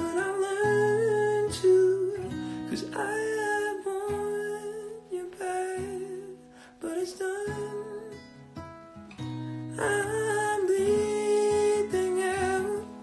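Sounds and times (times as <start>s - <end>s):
man singing: 0.0s - 8.4s, 9.7s - 13.0s
acoustic guitar strumming chords: 0.0s - 13.0s.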